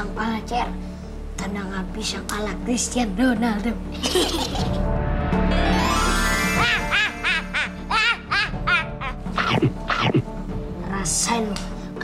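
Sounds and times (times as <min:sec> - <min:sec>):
background music: 0:00.0 - 0:12.0
cartoonish cackling laugh: 0:04.0 - 0:04.8, 0:06.6 - 0:10.0
rising magical sweep effect: 0:05.5 - 0:07.2.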